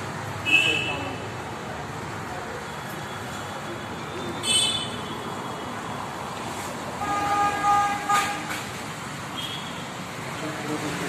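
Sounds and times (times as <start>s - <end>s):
street traffic: 0.0s - 11.0s
vehicle horn beeping: 4.2s - 5.7s, 7.0s - 8.6s.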